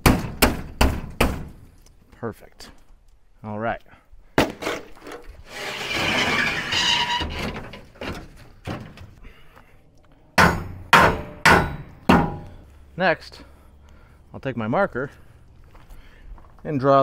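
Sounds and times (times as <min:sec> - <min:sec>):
metal plate scraping on metal: 0:04.7 - 0:08.3
hammer blows on metal: 0:10.4 - 0:12.6.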